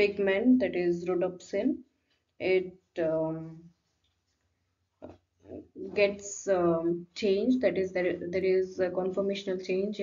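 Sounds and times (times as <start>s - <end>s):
woman speaking: 0.0s - 1.8s, 2.4s - 3.7s, 5.5s - 10.0s.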